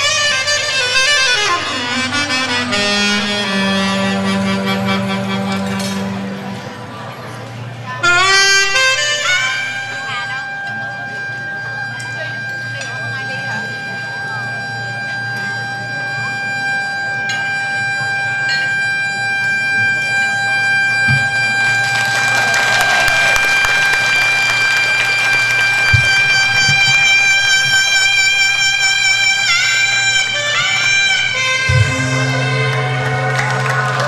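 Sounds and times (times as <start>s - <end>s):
sliding bent notes: 0.0s - 13.4s, 23.5s - 34.0s
live band playing instrumental: 0.0s - 34.0s.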